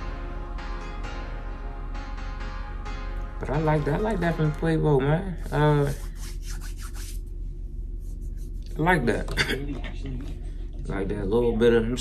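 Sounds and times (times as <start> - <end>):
steady low hum: 0.0 - 12.0
hand scratching a beard: 5.4 - 7.3, 8.0 - 9.0.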